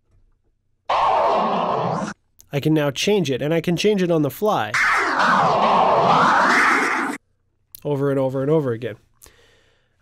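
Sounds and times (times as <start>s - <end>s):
vocal scratch sample pitch sweep: 0.9s - 2.2s, 4.8s - 7.2s.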